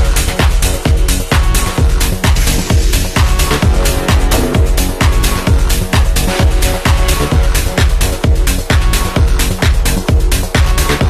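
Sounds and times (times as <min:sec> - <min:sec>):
techno music: 0:02.6 - 0:09.2.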